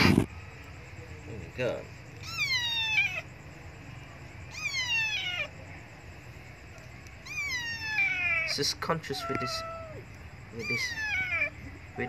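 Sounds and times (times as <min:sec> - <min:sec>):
kitten meowing: 0:02.2 - 0:03.3, 0:04.5 - 0:05.5, 0:07.2 - 0:11.6.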